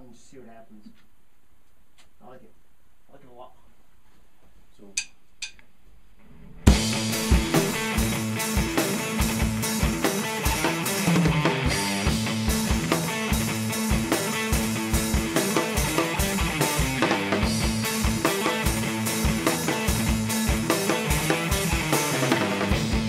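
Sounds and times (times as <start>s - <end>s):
drum kit: 6.2s - 23.0s
electric guitar rock riff: 6.6s - 23.0s
kick drum driving pattern: 6.7s - 23.0s.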